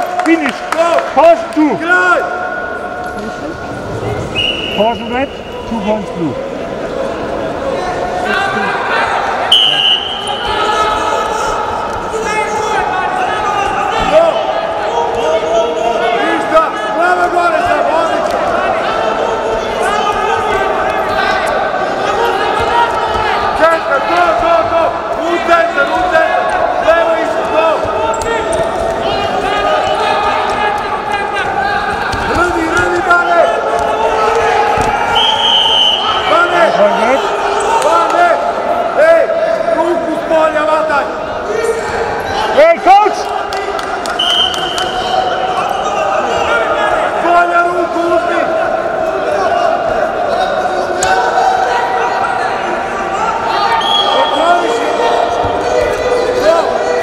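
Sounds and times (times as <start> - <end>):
referee's whistle blasts: 4.3 - 5.6, 9.5 - 10.5, 35.1 - 36.4, 44.2 - 45.4, 53.7 - 54.5
coaches shouting: 7.8 - 57.0.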